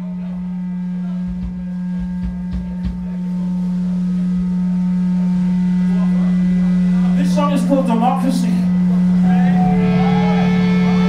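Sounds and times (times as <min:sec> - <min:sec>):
amplified low drone: 0:00.0 - 0:11.0.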